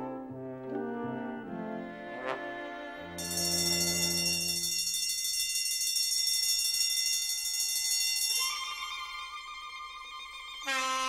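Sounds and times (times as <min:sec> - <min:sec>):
electric alarm bell ringing: 0:03.2 - 0:09.5.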